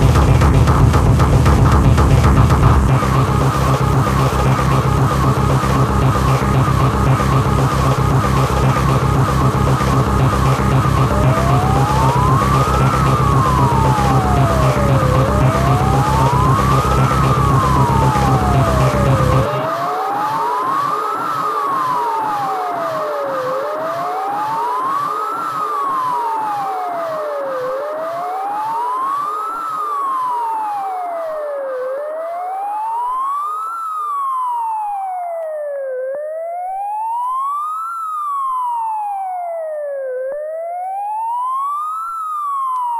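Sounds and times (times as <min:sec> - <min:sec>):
heavy kick-drum beat: 0:00.0 - 0:19.8
light electronic rhythm: 0:00.0 - 0:42.9
siren-like synth tone: 0:00.0 - 0:42.9.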